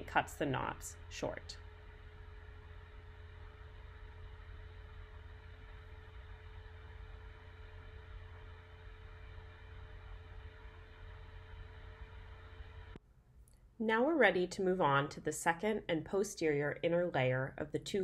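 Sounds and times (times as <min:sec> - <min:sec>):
faint constant tone: 0:00.0 - 0:18.0
steady low hum: 0:00.0 - 0:18.0.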